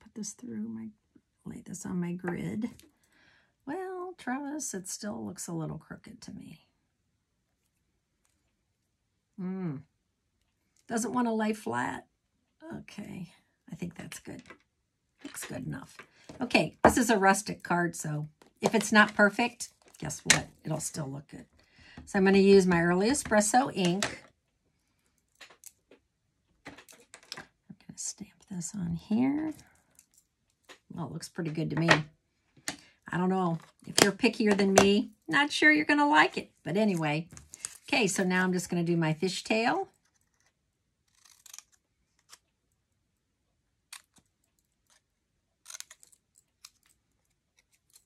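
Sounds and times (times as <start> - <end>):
scissors snipping paper: 40.0 - 42.5.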